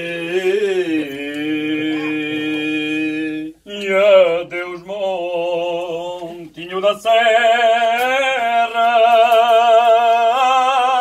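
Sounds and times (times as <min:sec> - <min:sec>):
men singing unaccompanied: 0:00.0 - 0:11.0.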